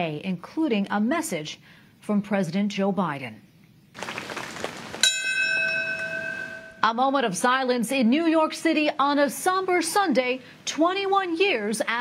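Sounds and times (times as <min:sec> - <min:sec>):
bell ringing: 0:05.0 - 0:06.9.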